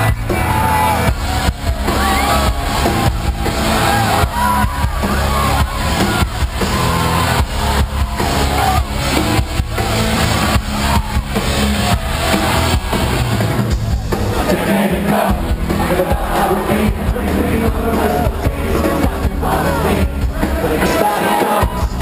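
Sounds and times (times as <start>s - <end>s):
drum kit steady beat: 0.0s - 22.0s
live rock band playing: 0.0s - 22.0s.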